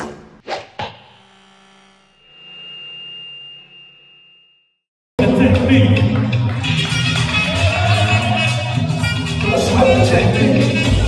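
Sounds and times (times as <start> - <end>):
thin high tone: 2.0 - 4.8.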